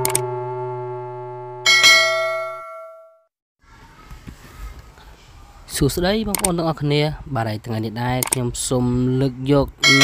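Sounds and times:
click: 0.0 - 0.2, 6.3 - 6.5, 8.2 - 8.4
sustained electronic chord: 0.0 - 2.7
bright bell ding: 1.6 - 3.2.

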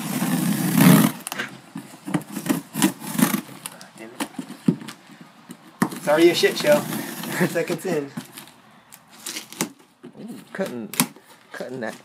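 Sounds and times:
knife slicing packing tape: 2.1 - 3.8, 9.1 - 9.8.

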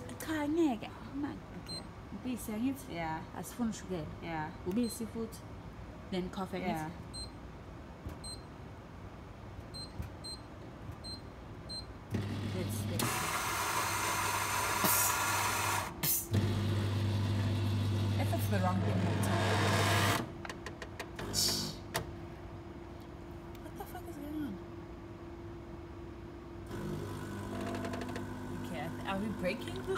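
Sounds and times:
coffee machine motor humming: 12.1 - 20.3, 26.6 - 29.9.

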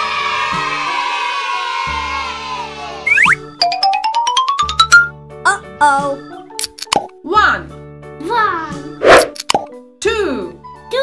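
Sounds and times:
children's background music: 0.0 - 11.0
quick upward swoop: 9.0 - 9.4.

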